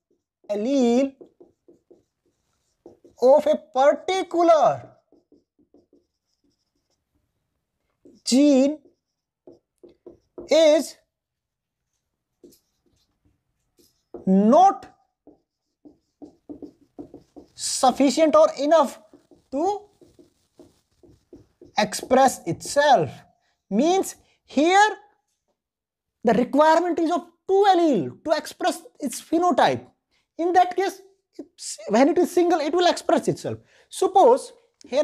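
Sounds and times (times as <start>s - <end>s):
marker writing on whiteboard: 0.0s - 23.2s, 34.0s - 35.0s.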